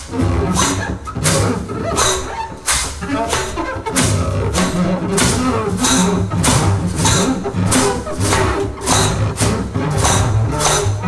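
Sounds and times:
double bass playing low notes: 0.0 - 11.0
drum kit strikes: 0.0 - 11.0.

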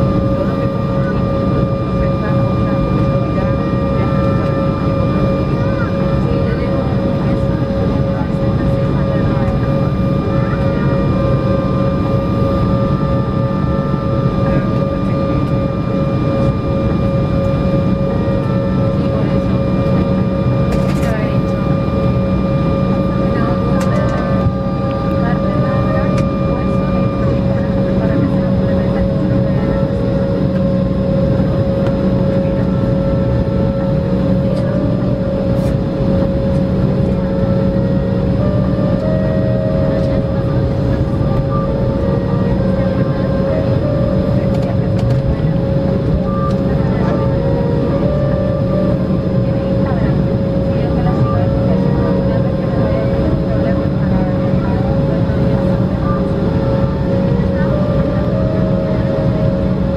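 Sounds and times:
engine whining tones: 0.0 - 59.9
jet engines from inside cabin: 0.0 - 59.9.

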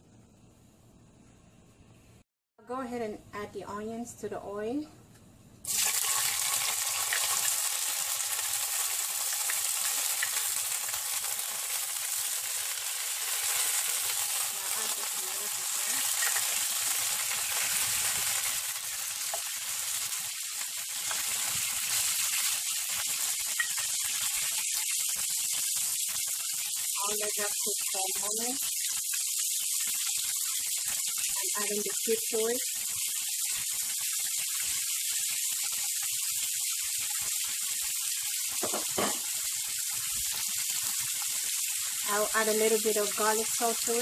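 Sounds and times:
onions sizzling in hot oil: 5.6 - 44.0.

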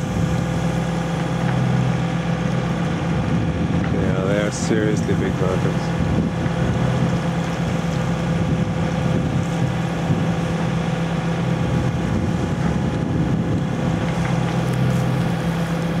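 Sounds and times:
boat engine droning: 0.0 - 16.0.

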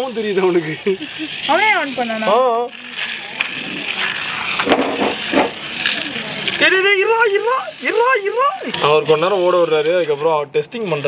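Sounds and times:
plastic toy track clicks: 0.0 - 11.0.

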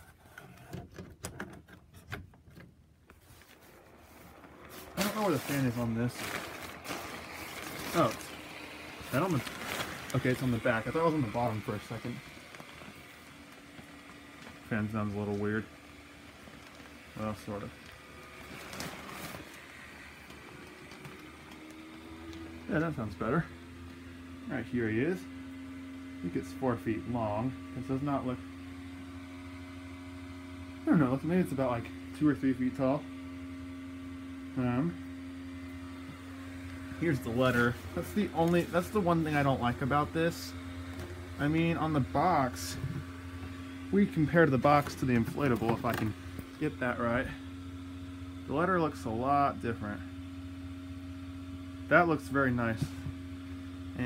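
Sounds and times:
electric blower fan running: 0.0 - 54.0
nylon fabric rustling: 3.2 - 14.7.

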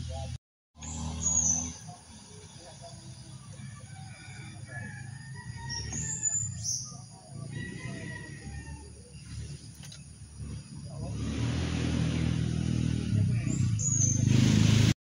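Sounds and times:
vehicle engine humming: 0.0 - 15.0
birds chirping: 0.1 - 11.2, 13.0 - 14.4.

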